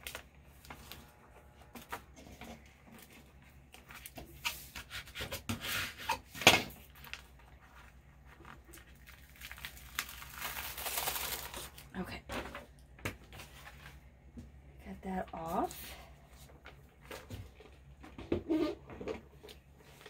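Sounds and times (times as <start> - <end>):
vinyl decal peeling with crackle: 6.8 - 11.9
paper backing sheet rustling: 6.8 - 12.2.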